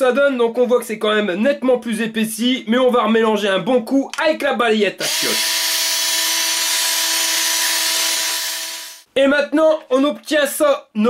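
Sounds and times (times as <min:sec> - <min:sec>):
drill motor whine: 0:05.0 - 0:09.1.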